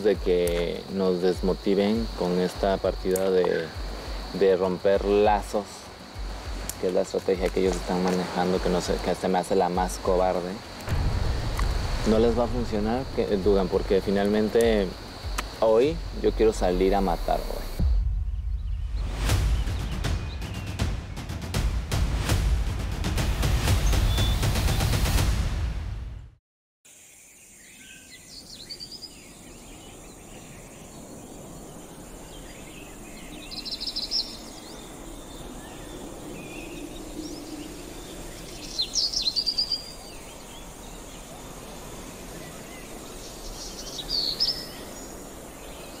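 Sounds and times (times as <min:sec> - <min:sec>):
birds chirping: 0:00.0 - 0:21.3, 0:23.7 - 0:25.0, 0:27.0 - 0:46.0
music: 0:00.0 - 0:26.4.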